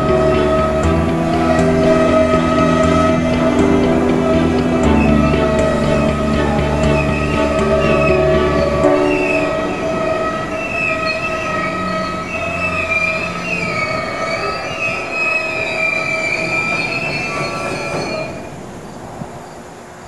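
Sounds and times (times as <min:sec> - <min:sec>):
train wheels squealing on rail: 0:05.0 - 0:19.0.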